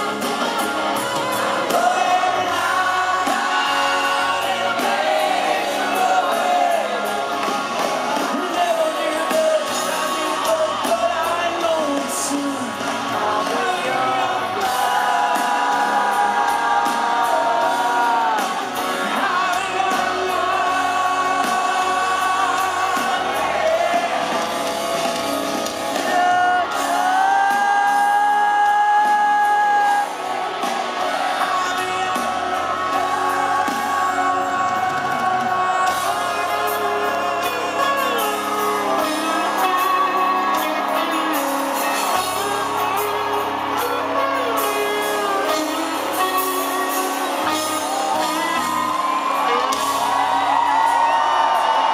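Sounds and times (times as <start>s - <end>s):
crowd cheering and whooping: 0.0s - 51.9s
live rock band playing: 0.0s - 51.9s.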